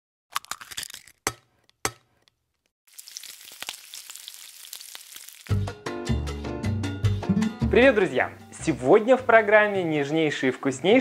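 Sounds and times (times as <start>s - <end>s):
latin-style music with bass line: 5.5s - 9.4s.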